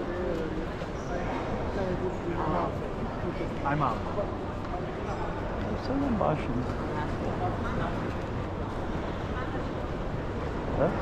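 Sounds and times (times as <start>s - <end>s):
hubbub of indistinct voices: 0.0s - 11.0s.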